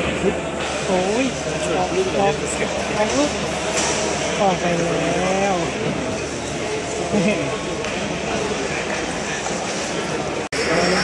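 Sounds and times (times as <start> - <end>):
busy hall din: 0.0 - 11.0.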